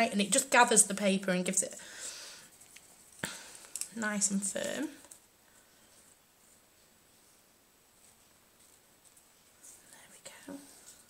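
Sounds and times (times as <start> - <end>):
paper ribbon rustling: 2.5 - 9.9.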